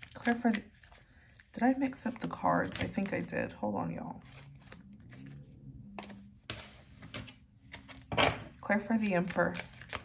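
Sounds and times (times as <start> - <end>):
cards tapping and rustling: 9.0 - 10.0.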